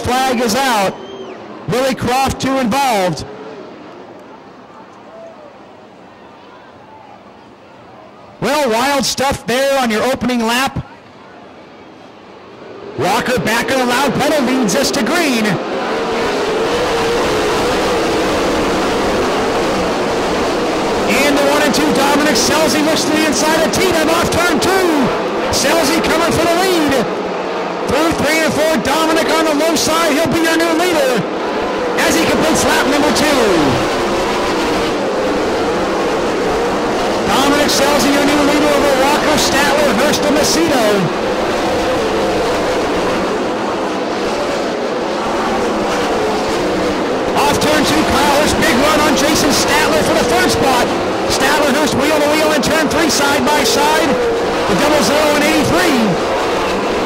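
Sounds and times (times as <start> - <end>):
racing car engines running hard: 0.0 - 6.2, 7.2 - 57.0.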